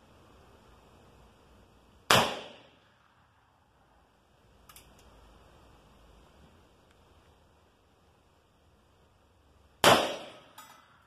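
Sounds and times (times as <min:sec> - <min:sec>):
revolver gunshot crack: 0:02.1 - 0:02.7, 0:09.8 - 0:10.5.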